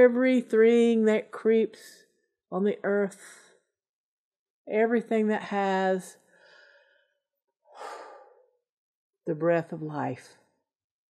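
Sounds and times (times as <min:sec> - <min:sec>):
woman breathing in: 0:06.2 - 0:08.6.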